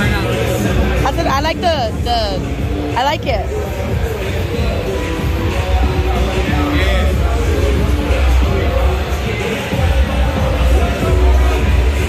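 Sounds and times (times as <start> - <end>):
background music: 0.0 - 12.0
murmur of busy hall: 0.0 - 12.0
voices talking: 0.0 - 12.0.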